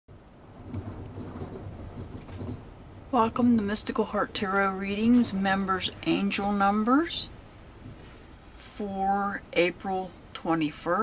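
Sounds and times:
low fluctuating rumble: 0.1 - 11.0.

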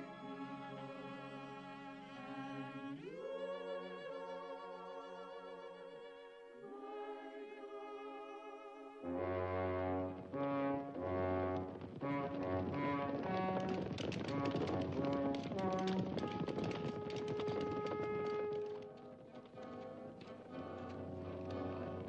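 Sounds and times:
orchestral music led by brass: 8.9 - 22.0
galloping hoofbeats: 10.3 - 22.0.

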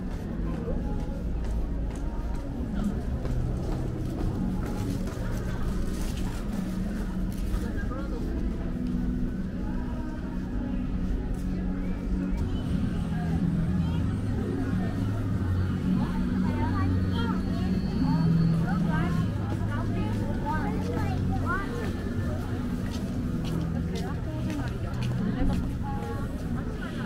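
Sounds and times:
passersby talking: 0.0 - 27.0.

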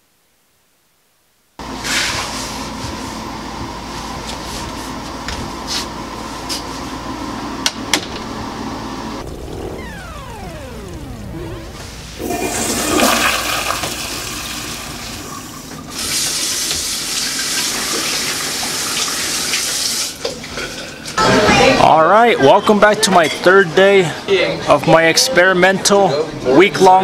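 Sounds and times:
falling tone: 9.2 - 15.2
sink tap running: 12.2 - 19.8
toilet flushing: 12.2 - 21.2.

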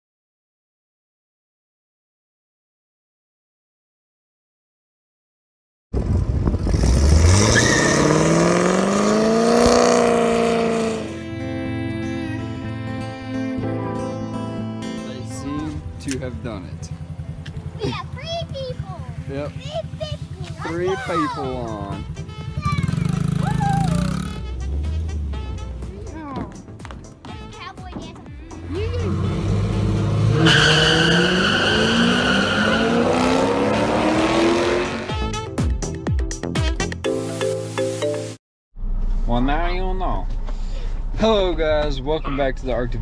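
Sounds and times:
cars accelerating hard: 6.5 - 11.3, 28.6 - 35.2
dirt bike engine revving: 6.6 - 11.5, 21.6 - 25.7, 28.5 - 35.2
music: 10.8 - 30.4, 34.5 - 38.4.

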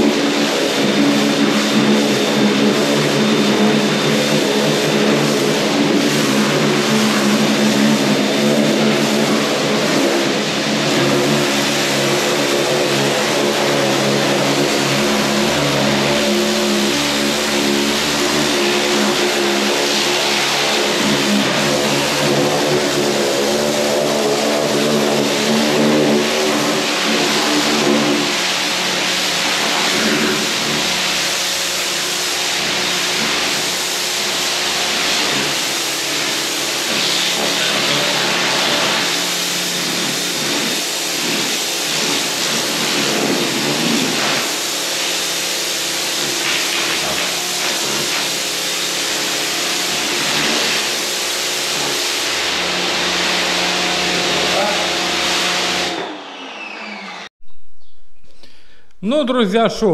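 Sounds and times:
water jet hissing: 0.0 - 55.9
pressure washer humming: 0.0 - 57.3.

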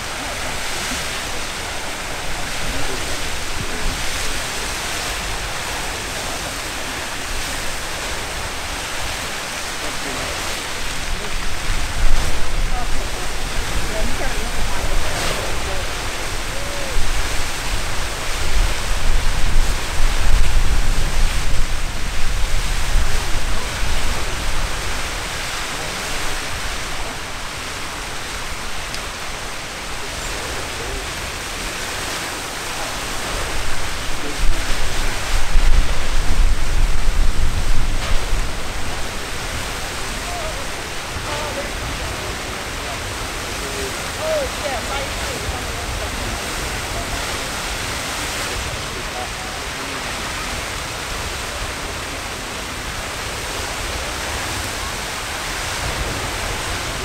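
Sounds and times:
geyser water and steam rushing: 0.0 - 57.0.

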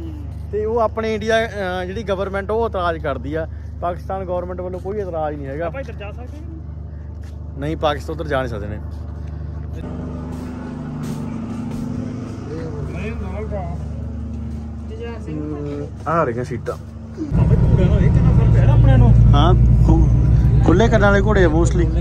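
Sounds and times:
vehicle engine humming: 0.0 - 22.0.

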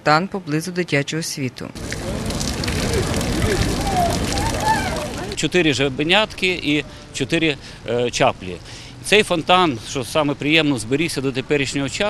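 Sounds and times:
faint voices: 1.8 - 5.4
fountain water splashing: 1.8 - 12.0.

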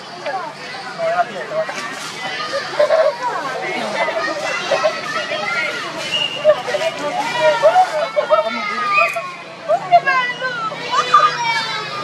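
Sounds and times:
children's voices: 0.0 - 12.0
people chattering: 0.0 - 12.0.

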